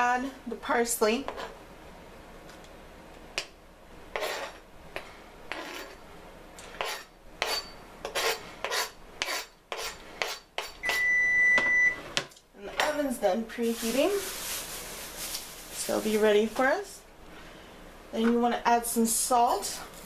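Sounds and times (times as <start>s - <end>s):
knife scraping cutting board: 4.1s - 4.6s, 5.5s - 6.0s, 6.7s - 10.8s
high electronic beep: 10.8s - 12.0s.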